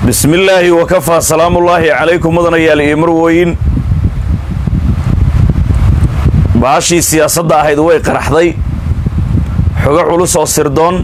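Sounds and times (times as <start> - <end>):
wind buffeting a microphone: 0.0 - 11.0.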